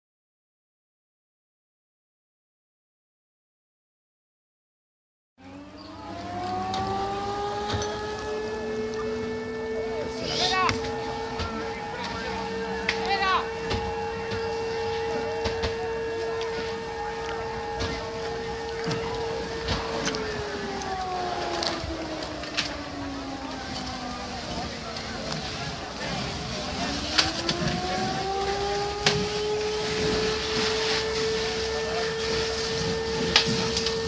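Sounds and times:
engine running steadily: 5.4s - 34.0s
low tone sliding down: 5.4s - 34.0s
fire crackling and popping: 10.1s - 34.0s.

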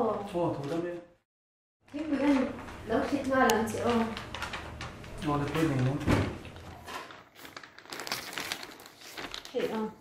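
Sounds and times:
newspaper pages rustling: 3.8s - 10.0s.

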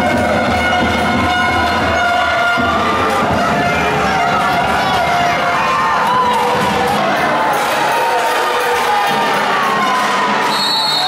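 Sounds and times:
sustained horn-like tones: 0.0s - 5.7s
indoor sports crowd noise: 0.0s - 11.0s.

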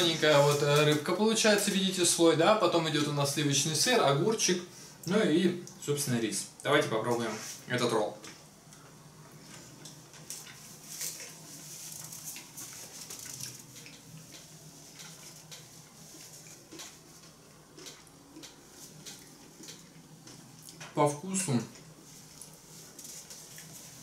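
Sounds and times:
quiet chewing: 8.2s - 21.0s, 21.6s - 24.0s.

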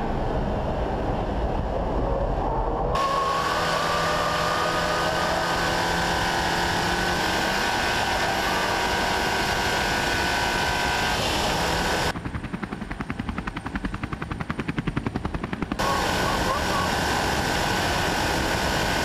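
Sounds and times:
car engine at high revs: 3.0s - 12.1s, 15.8s - 19.0s
helicopter rotor chop: 3.0s - 19.0s.

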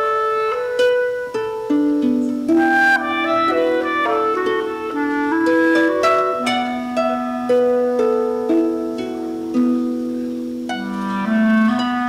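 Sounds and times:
clarinet melody: 0.0s - 12.0s
harp plucking notes: 0.0s - 12.0s.

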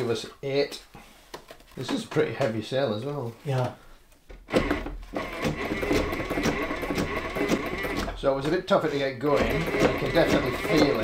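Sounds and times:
sewing mechanism clicks and knocks: 4.4s - 11.0s
hand-turned sewing machine stitching: 4.5s - 11.0s.

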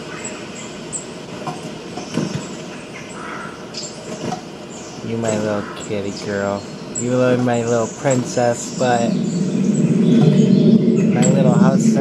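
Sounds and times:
rough low hum: 5.0s - 12.0s.

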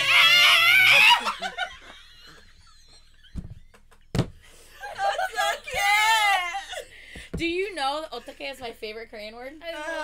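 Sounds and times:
people laughing: 0.0s - 3.8s, 4.8s - 6.9s.

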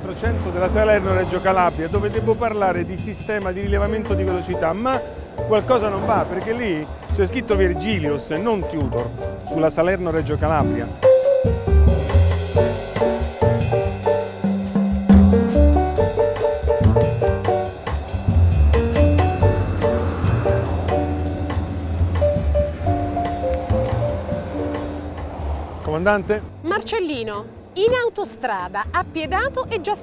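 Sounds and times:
background music with drums and bass: 0.0s - 30.0s.

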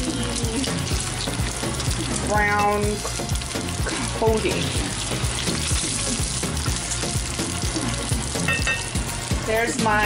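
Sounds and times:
eggs sizzling in hot oil: 0.0s - 10.0s.

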